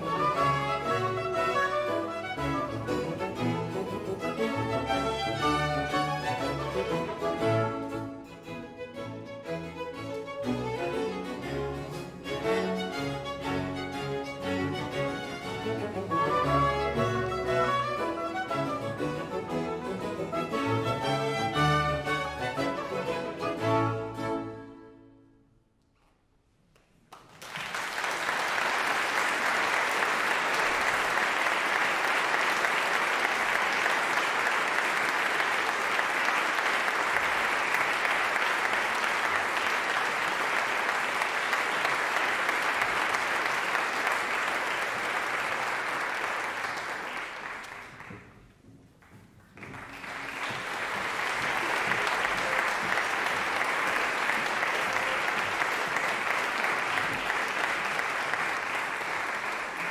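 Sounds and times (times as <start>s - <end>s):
concert audience applauding: 0.0s - 7.9s, 26.8s - 59.9s.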